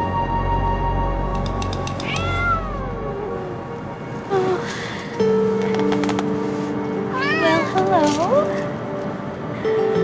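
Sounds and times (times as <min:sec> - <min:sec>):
cat meowing: 0:02.0 - 0:03.1, 0:07.1 - 0:07.8.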